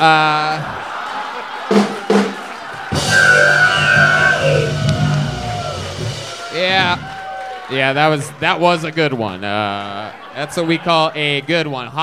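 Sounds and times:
band playing rock music: 0:02.9 - 0:07.0.

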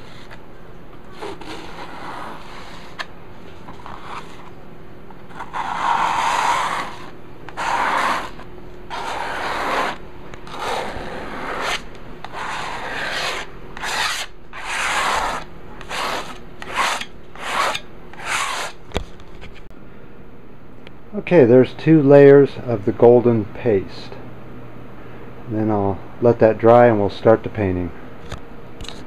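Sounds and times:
paste scraped across canvas: 0:01.2 - 0:03.1, 0:05.3 - 0:18.8.

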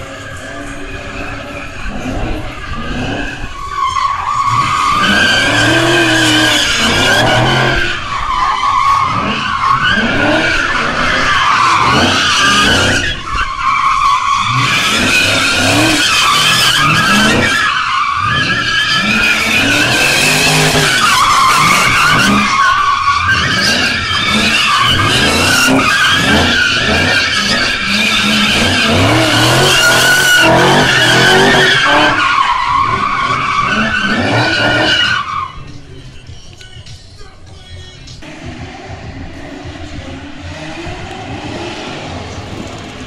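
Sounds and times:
car engine revving: 0:00.0 - 0:36.0, 0:38.1 - 0:43.0
tyres squealing: 0:00.0 - 0:38.3.

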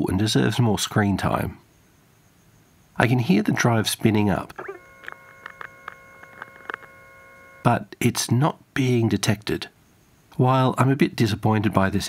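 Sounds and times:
hard disk high whine: 0:01.3 - 0:08.0
faint hard disk clicks: 0:04.4 - 0:07.7.

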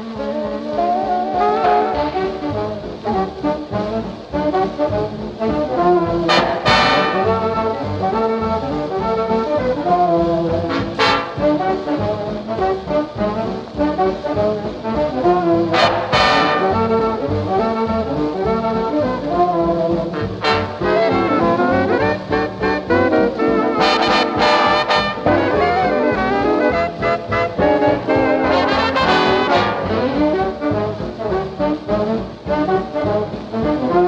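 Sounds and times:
big band jazz with brass: 0:00.0 - 0:34.0.

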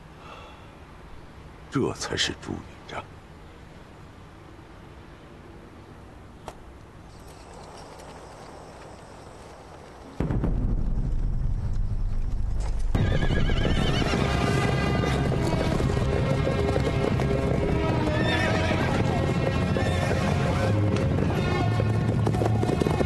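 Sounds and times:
hooves clattering: 0:07.1 - 0:10.2, 0:12.1 - 0:23.0
horses neighing: 0:12.9 - 0:23.0.

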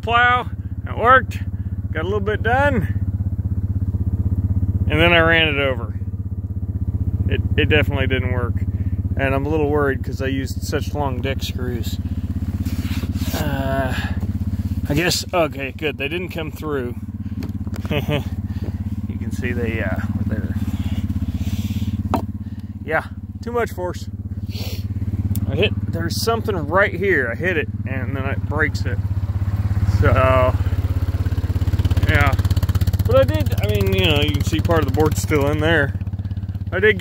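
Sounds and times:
small engine idling: 0:00.0 - 0:37.0.

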